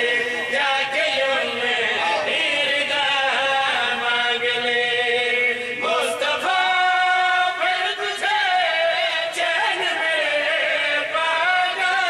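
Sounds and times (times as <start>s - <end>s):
men chanting in long notes: 0.0s - 12.0s.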